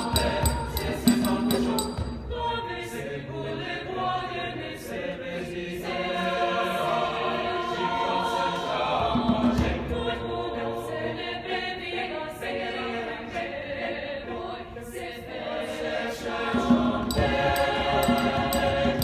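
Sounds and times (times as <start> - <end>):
mixed choir singing held chords: 0.0 - 19.0.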